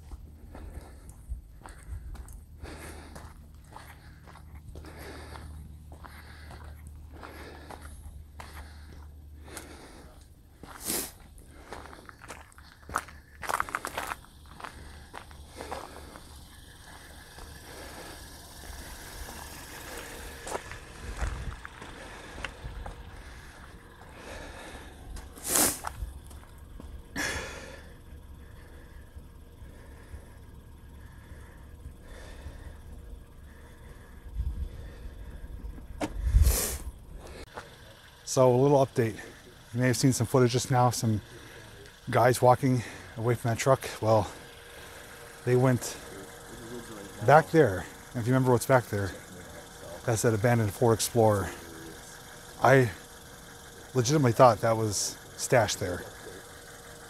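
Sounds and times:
footsteps crunching on gravel: 0:00.0 - 0:10.0, 0:10.6 - 0:27.0
low wind rumble on microphone: 0:01.1 - 0:02.3, 0:34.2 - 0:37.1.

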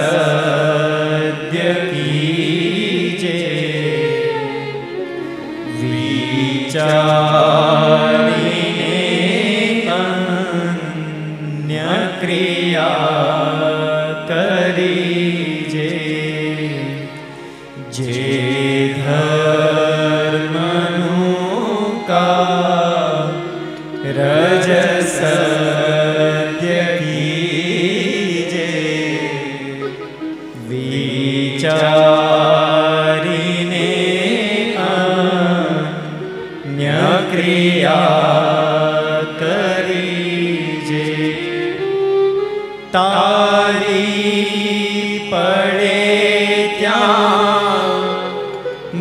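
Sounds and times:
man singing a chant: 0:00.0 - 0:04.4, 0:05.7 - 0:17.2, 0:17.8 - 0:29.9, 0:30.6 - 0:41.8, 0:42.9 - 0:49.0.

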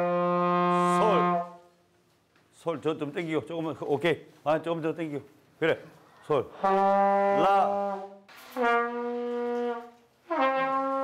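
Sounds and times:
trombone long note: 0:00.0 - 0:01.6, 0:06.5 - 0:11.0.

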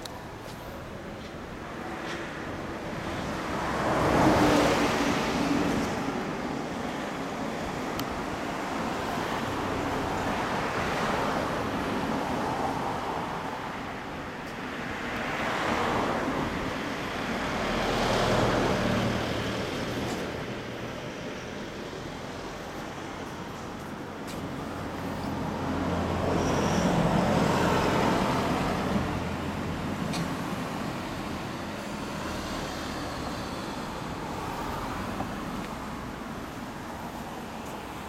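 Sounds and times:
steady traffic hum: 0:00.0 - 0:38.0
vehicles passing by: 0:00.0 - 0:38.0.

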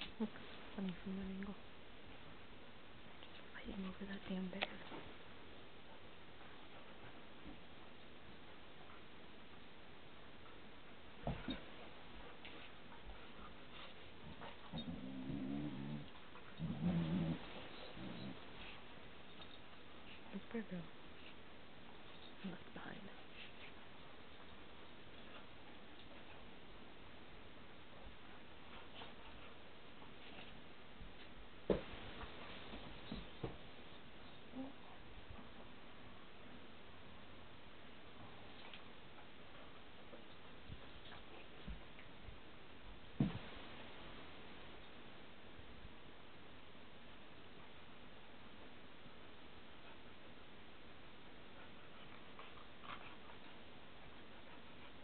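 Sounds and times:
background hiss: 0:00.0 - 0:55.0
dog growling in play: 0:14.2 - 0:18.7.

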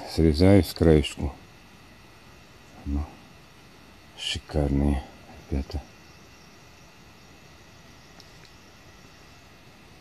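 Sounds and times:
low hiss and rumble: 0:00.0 - 0:10.0
faint ticks: 0:08.1 - 0:08.6.

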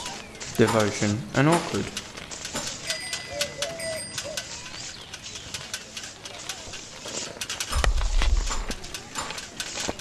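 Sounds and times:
heavy low rumble: 0:07.7 - 0:09.0.

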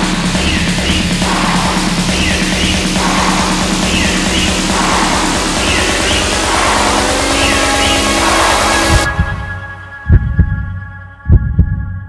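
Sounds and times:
heartbeat thumps: 0:00.0 - 0:12.0.

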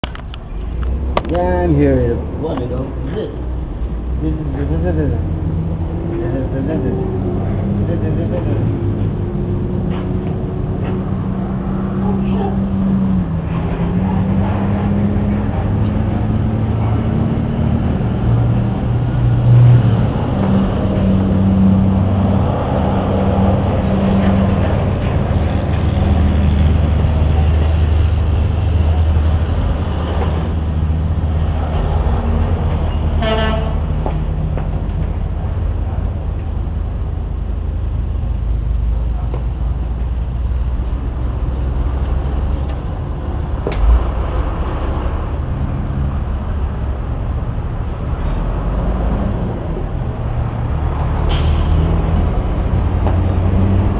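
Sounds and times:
short horn toot: 0:33.2 - 0:33.9.

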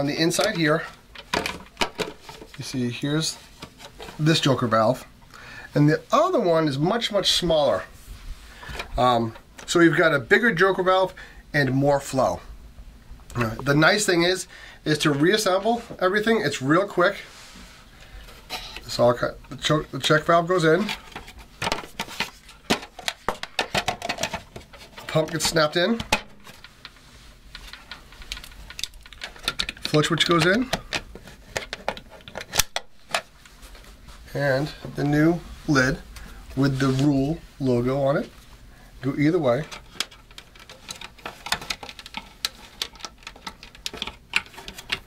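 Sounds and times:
plastic parts clicking and knocking: 0:01.2 - 0:02.6, 0:20.8 - 0:26.9, 0:27.5 - 0:33.3, 0:39.6 - 0:45.0.

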